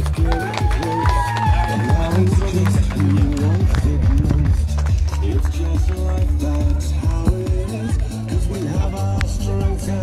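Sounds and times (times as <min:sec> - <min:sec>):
loud music with steady beat: 0:00.0 - 0:10.0
voices in music: 0:00.0 - 0:10.0.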